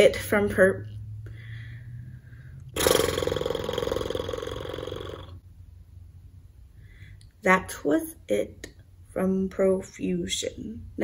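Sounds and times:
person groaning throatily: 0:02.8 - 0:05.4.

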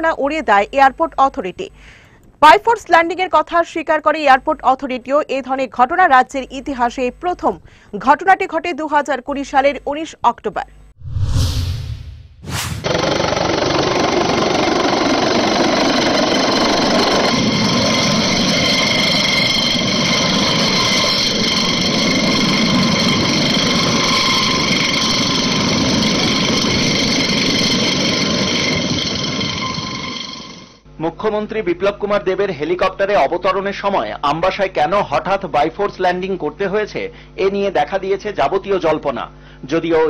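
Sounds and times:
rotor rushing noise: 0:11.0 - 0:30.7
helicopter turbine whine: 0:12.6 - 0:40.0.

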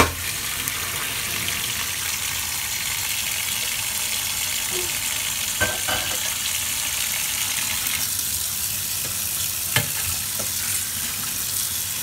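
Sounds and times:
tap water running into colander: 0:00.0 - 0:12.0.

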